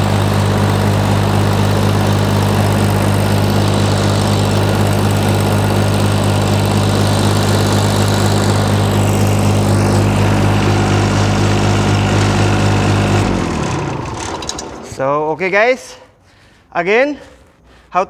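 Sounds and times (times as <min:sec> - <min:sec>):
diesel engine running and winding down: 0:00.0 - 0:15.2.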